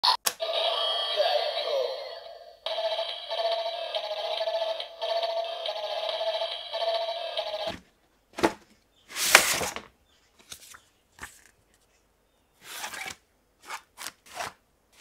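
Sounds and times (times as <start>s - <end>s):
toy electronic voice: 0.0s - 7.7s
rhythmic electronic music loop: 2.7s - 7.7s.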